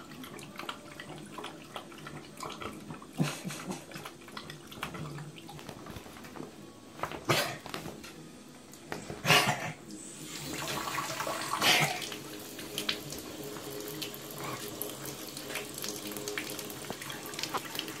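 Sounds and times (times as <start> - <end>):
tap running into bathtub: 10.3 - 18.0.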